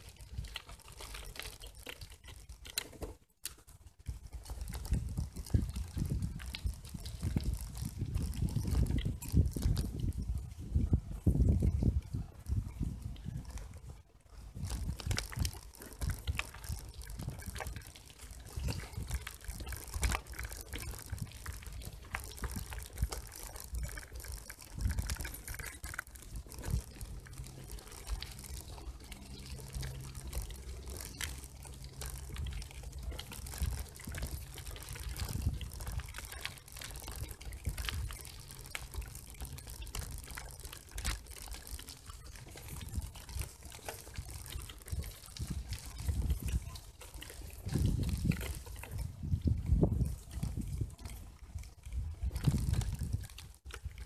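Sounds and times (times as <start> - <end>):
bicycle tyres crunching on gravel: 0.0 - 54.0.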